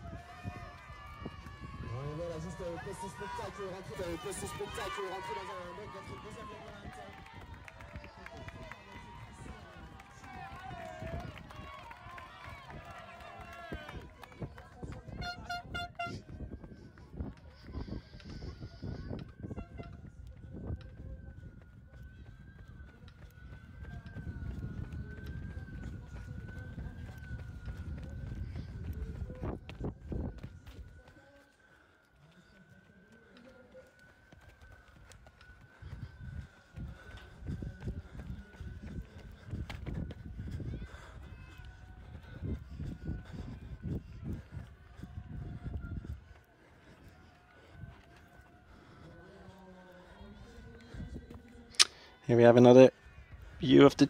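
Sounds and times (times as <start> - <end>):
running footsteps: 0.0 - 54.0.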